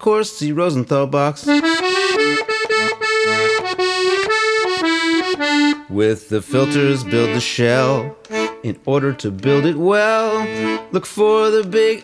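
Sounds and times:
light steady beat: 0:01.4 - 0:05.8
accordion playing held notes: 0:01.4 - 0:11.0.

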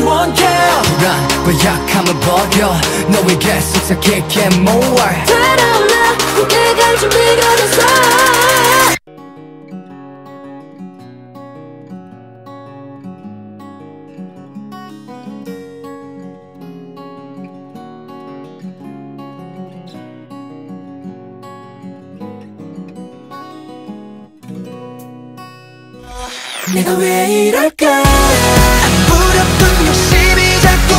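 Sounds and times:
acoustic guitar melody: 0:00.0 - 0:27.2, 0:28.0 - 0:30.9.

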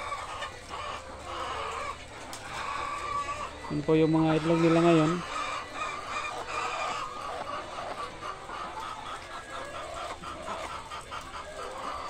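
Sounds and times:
hens clucking and calling: 0:00.0 - 0:12.0.

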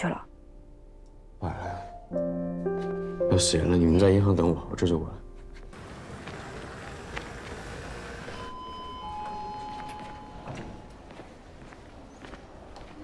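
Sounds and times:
footsteps on hard ground: 0:05.4 - 0:08.4, 0:10.0 - 0:13.0.

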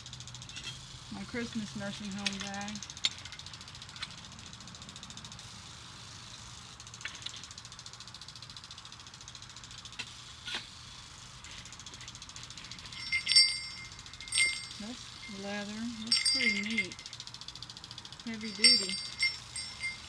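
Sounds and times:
sleigh bells jingling: 0:12.6 - 0:17.3, 0:18.2 - 0:20.0.

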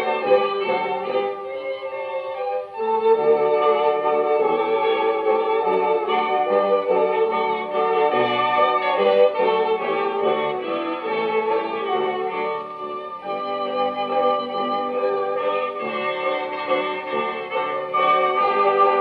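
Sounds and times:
dance band playing a waltz on gramophone: 0:00.0 - 0:19.0.

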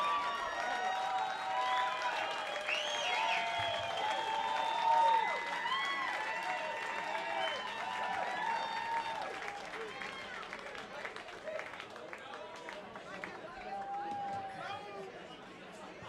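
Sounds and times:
whoops and shouts: 0:00.0 - 0:10.2
crowd applauding: 0:00.0 - 0:14.9.

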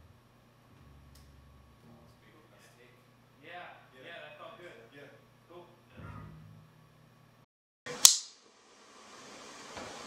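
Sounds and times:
sharp click: 0:08.0 - 0:08.4.

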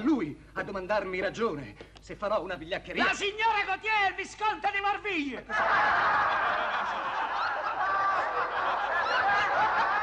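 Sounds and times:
audience laughing: 0:05.5 - 0:10.0.

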